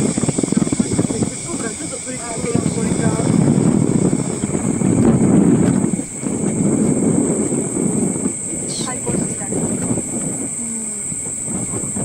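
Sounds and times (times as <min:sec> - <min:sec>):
indistinct voices: 0:00.0 - 0:07.1, 0:08.5 - 0:12.0
low rumbling of moving ride: 0:00.0 - 0:12.0.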